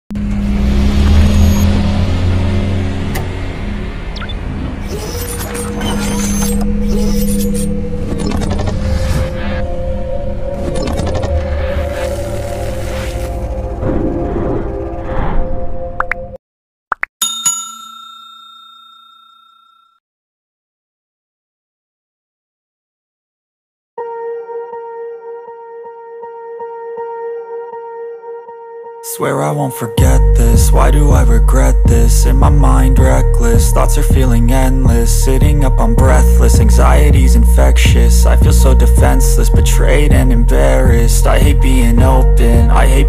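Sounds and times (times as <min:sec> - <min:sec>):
loud low drone: 0:00.1 - 0:04.9, 0:07.7 - 0:16.0, 0:30.0 - 0:43.0
bell-like chime: 0:17.2 - 0:20.0.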